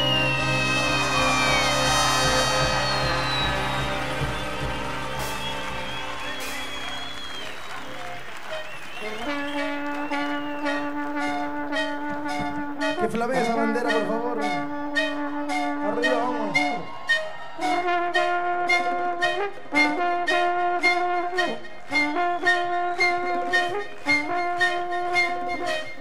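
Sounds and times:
steady percussion beat: 0.0s - 8.6s
brass band playing held chords: 0.0s - 26.0s.

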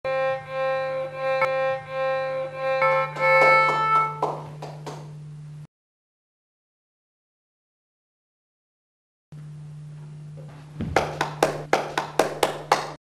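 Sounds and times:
violin bowed notes: 0.0s - 4.4s
steady low hum: 0.1s - 5.7s, 9.4s - 13.0s.

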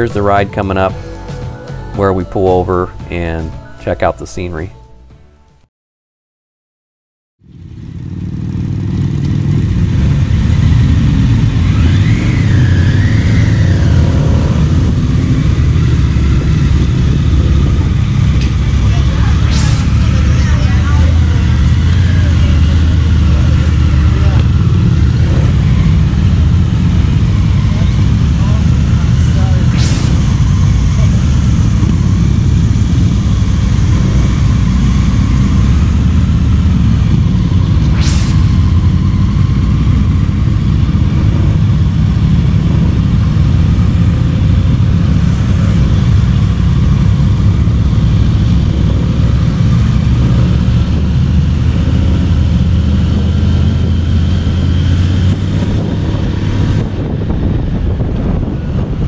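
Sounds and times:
scooter and motorcycle engines rumbling: 0.0s - 3.4s, 7.5s - 59.0s
brief sharp sounds: 19.4s - 20.5s, 29.7s - 30.6s, 37.8s - 38.8s.

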